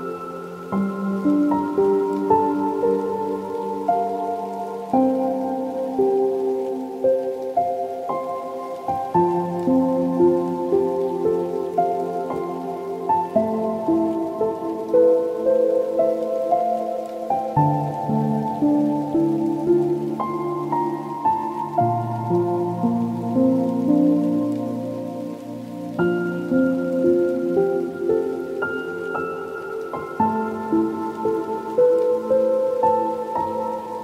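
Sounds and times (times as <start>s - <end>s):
soft solo piano music: 0.0s - 34.0s.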